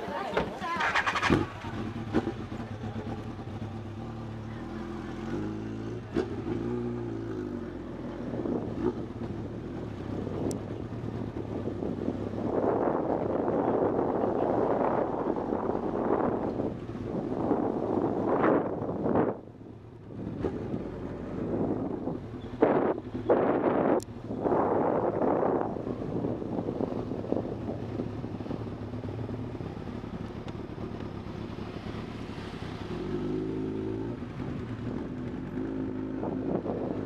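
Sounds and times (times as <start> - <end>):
motorcycle engine running: 0.2 - 37.0
wind on microphone: 10.1 - 19.5, 20.2 - 29.2, 32.8 - 37.0.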